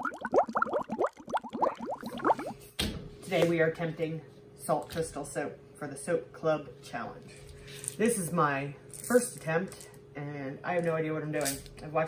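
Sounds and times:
watery bubbling bloops: 0:00.0 - 0:02.6.

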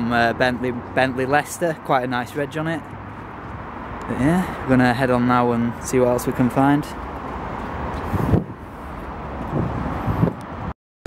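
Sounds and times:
traffic noise: 0:00.0 - 0:10.8
vehicle passing: 0:02.1 - 0:10.7
wind on microphone: 0:07.8 - 0:10.7.

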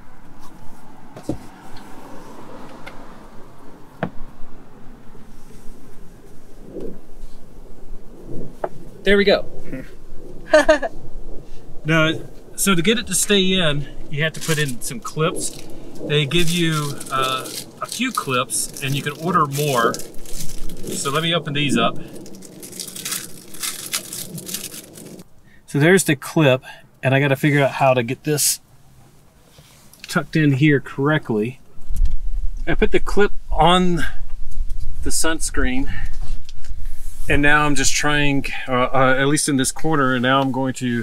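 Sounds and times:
plastic packaging crinkling: 0:14.3 - 0:25.2.

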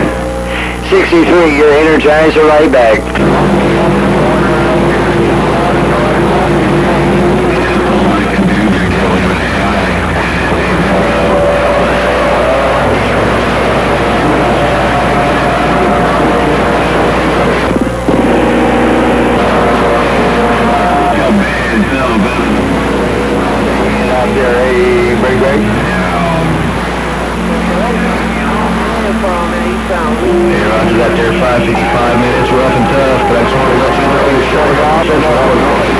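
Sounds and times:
low hum: 0:00.0 - 0:35.9
music over radio speaker: 0:00.0 - 0:35.9
radio static: 0:00.0 - 0:35.9.

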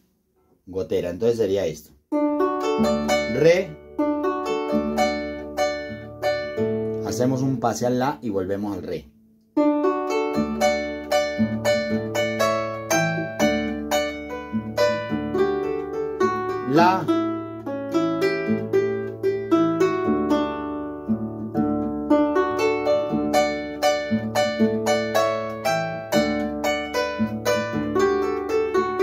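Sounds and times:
harp melody: 0:02.1 - 0:07.8, 0:09.6 - 0:29.0
harp bass notes: 0:02.2 - 0:09.0, 0:09.6 - 0:29.0.

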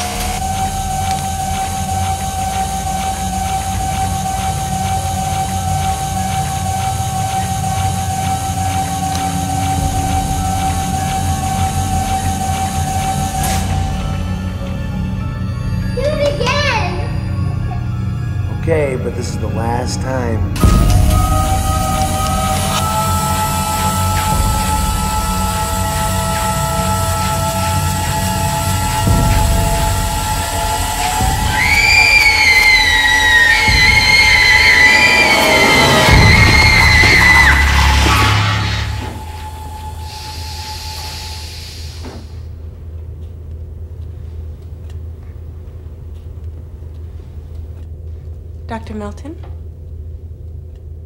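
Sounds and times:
ominous sustained film score: 0:00.0 - 0:51.0.

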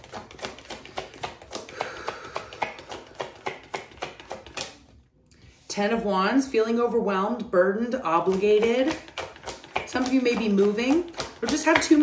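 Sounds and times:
cards being shuffled: 0:00.0 - 0:05.0, 0:08.2 - 0:12.0.

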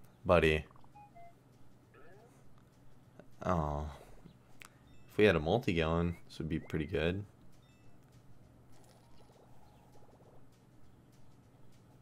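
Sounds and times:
low hum: 0:00.0 - 0:12.0
rapid rattling chirps: 0:00.1 - 0:12.0.

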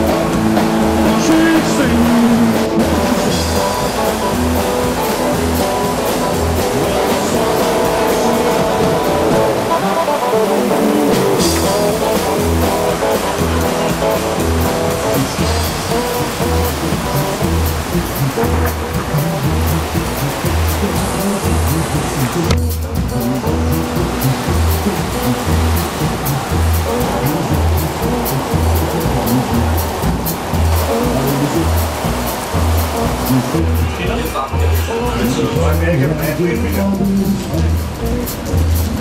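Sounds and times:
drum and bass beat: 0:00.0 - 0:39.0
rock band playing loudly: 0:00.0 - 0:39.0.

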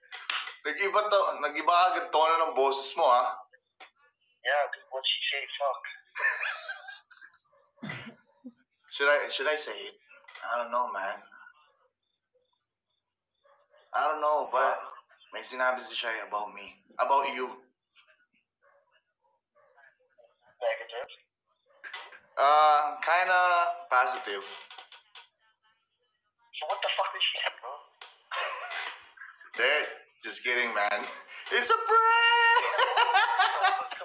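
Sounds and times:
voices talking: 0:00.0 - 0:13.0, 0:13.6 - 0:34.0
man's voice: 0:00.6 - 0:03.4, 0:09.0 - 0:11.4, 0:14.0 - 0:17.6, 0:22.4 - 0:24.6, 0:29.5 - 0:34.0.

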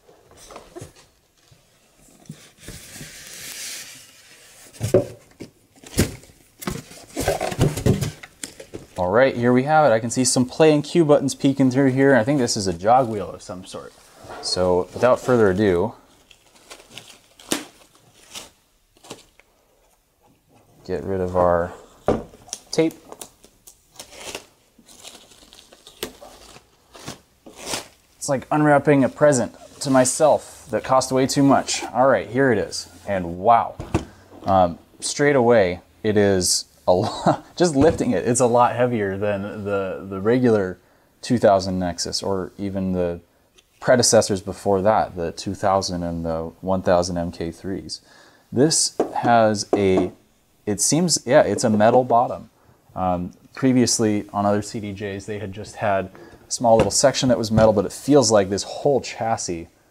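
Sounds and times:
cardboard and foam rustling: 0:00.4 - 0:09.0, 0:12.3 - 0:19.3
plastic wrap crinkling: 0:15.0 - 0:19.5, 0:22.4 - 0:28.2.

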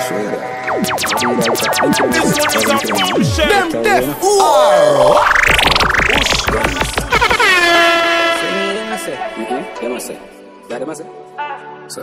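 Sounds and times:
low tone: 0:00.6 - 0:10.4
air horn blast: 0:07.3 - 0:10.3.

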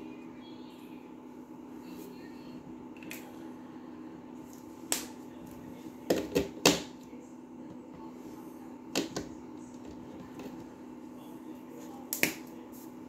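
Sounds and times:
low background hum: 0:00.0 - 0:13.0.

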